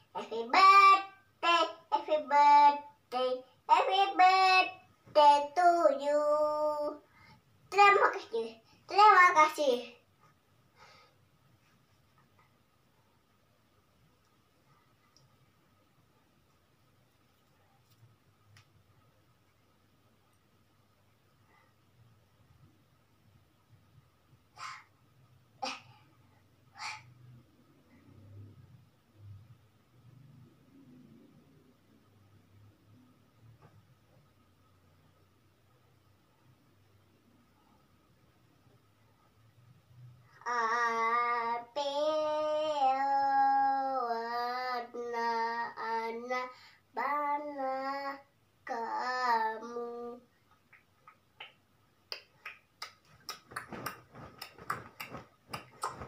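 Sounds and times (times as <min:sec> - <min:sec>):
girl singing: 0:00.0 - 0:10.0, 0:40.3 - 0:50.4
girl's breathy hoarse voice: 0:24.5 - 0:25.0, 0:25.6 - 0:27.3.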